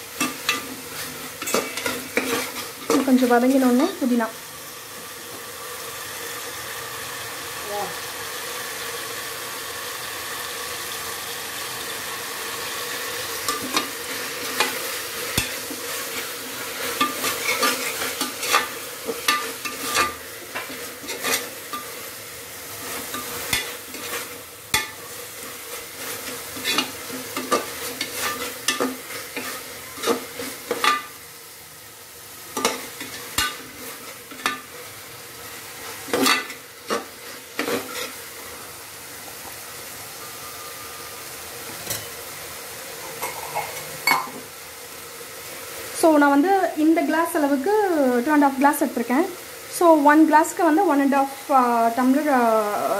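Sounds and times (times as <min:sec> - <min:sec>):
vegetables sizzling in oil: 0:00.0 - 0:52.9
ladle scraping a pot: 0:00.2 - 0:03.1, 0:13.5 - 0:21.9, 0:26.0 - 0:31.0, 0:36.1 - 0:38.2.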